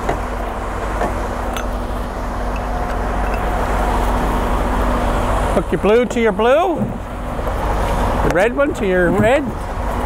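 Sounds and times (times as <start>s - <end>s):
diesel engine idling: 0.0s - 10.0s
air lines clicking: 2.4s - 4.1s.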